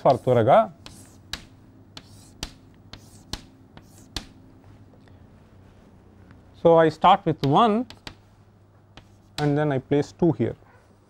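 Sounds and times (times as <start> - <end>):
chalk clicking on a chalkboard: 0.0 - 4.4, 7.4 - 8.3, 9.0 - 9.6.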